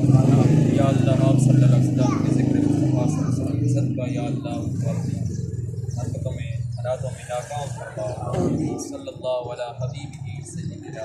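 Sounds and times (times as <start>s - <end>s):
man reciting a prayer: 0.0s - 5.3s, 6.0s - 11.0s.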